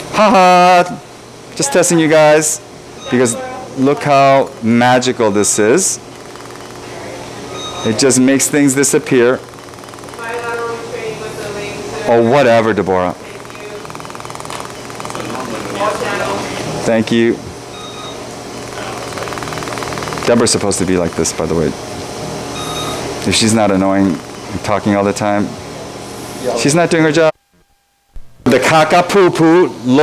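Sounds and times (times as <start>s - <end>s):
equipment hum and hiss: 0.0s - 30.0s
surgical laser pulsing buzz: 2.9s - 16.9s, 17.6s - 26.6s.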